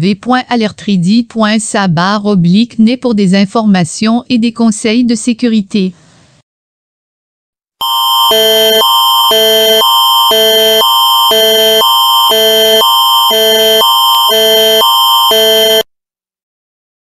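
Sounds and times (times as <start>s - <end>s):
emergency alert electronic tones: 7.8s - 15.9s.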